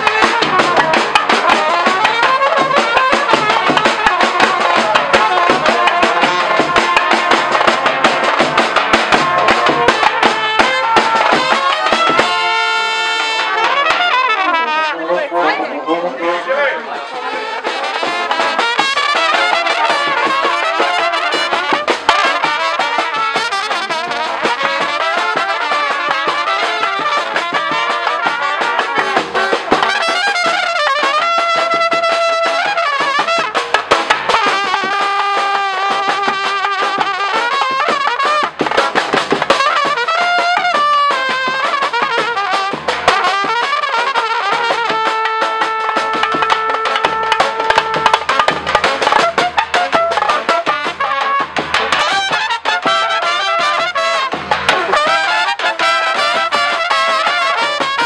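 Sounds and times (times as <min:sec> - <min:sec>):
snare drum and cymbal beat: 0:00.0 - 0:14.7, 0:17.6 - 0:58.0
trumpets playing melody: 0:00.0 - 0:58.0.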